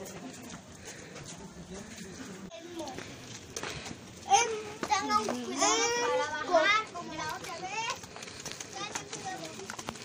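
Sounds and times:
children calling out and chattering: 0.0 - 10.0.

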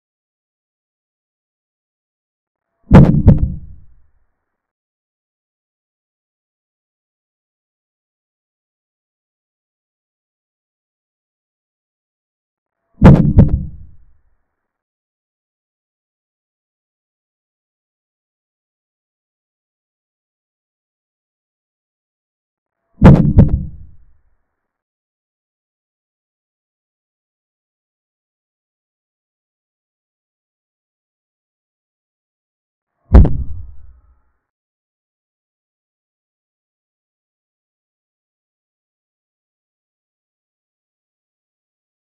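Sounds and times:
low knocks of chess move effect: 2.9 - 3.8, 13.0 - 14.0, 23.0 - 23.9, 33.1 - 33.9.

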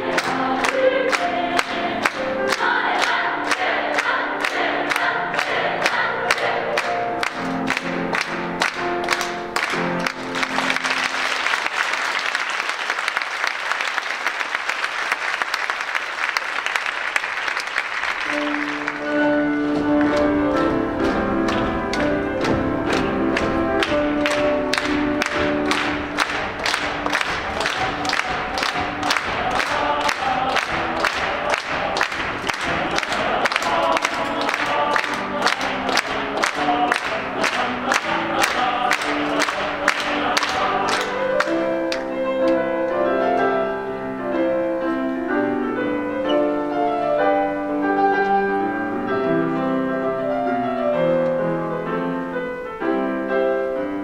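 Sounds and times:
girls' choir singing with piano: 0.0 - 11.6, 18.2 - 54.0
piano music: 0.0 - 12.2, 17.7 - 54.0
audience applause: 0.0 - 20.2, 21.4 - 41.6
steady rhythmic clapping: 0.0 - 43.0.

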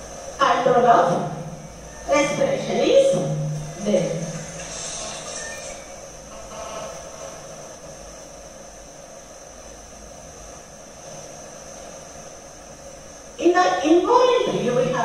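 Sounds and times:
background hum and hiss: 0.0 - 15.0
thin high whine: 0.0 - 15.0.

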